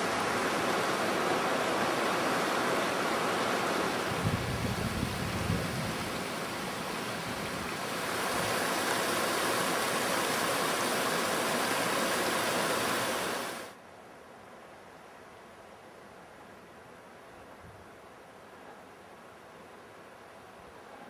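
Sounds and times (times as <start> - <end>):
stream rushing over rocks: 0.0 - 13.8.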